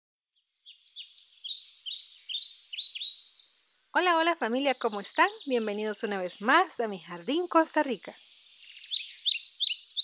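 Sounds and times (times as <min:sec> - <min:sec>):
birds chirping: 0:00.4 - 0:10.0.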